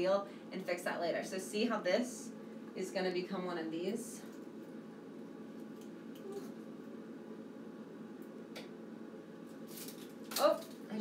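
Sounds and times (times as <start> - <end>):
dried stems rustling: 9.6 - 11.0.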